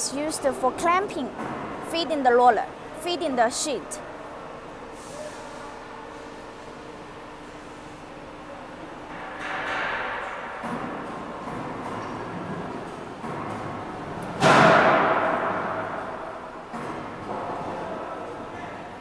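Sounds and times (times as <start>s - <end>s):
loud metal bang: 14.4s - 16.6s.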